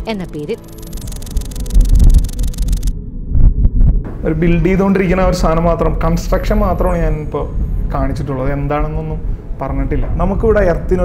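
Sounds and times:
deep pulsing rumble: 0.0 - 11.0.

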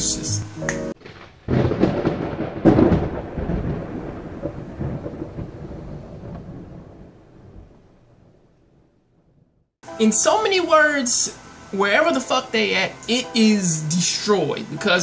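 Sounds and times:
rumbling crash: 1.0 - 9.7.

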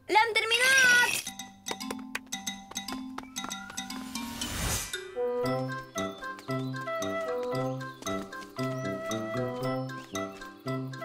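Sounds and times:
light background music: 1.2 - 11.0.

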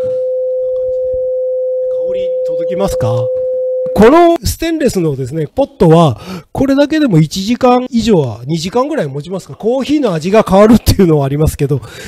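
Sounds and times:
steady electronic tone: 0.0 - 4.3.

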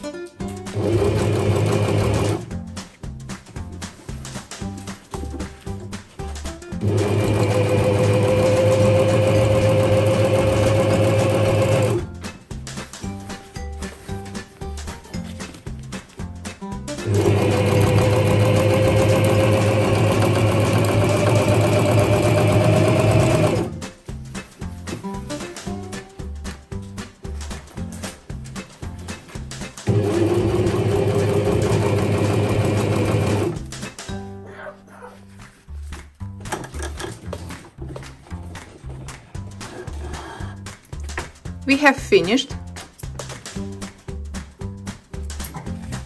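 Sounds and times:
sewing machine stitching: 0.6 - 2.5, 6.8 - 12.1, 17.0 - 23.8, 29.8 - 33.8.

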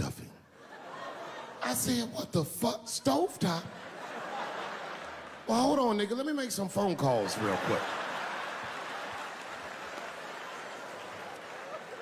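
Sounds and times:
audience laughing: 0.6 - 2.2, 3.4 - 6.0, 6.8 - 12.0
audience applauding: 7.0 - 12.0.

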